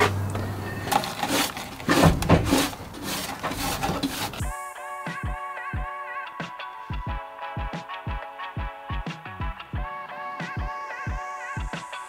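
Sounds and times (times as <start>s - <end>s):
rubbing and scraping by hand: 0.8s - 4.5s
music with a beat: 4.4s - 12.0s.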